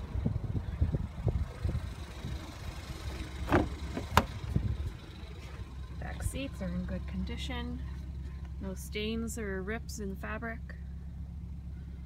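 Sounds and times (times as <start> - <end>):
car engine idling: 0.0 - 12.0
car door latch clicks: 3.4 - 4.4.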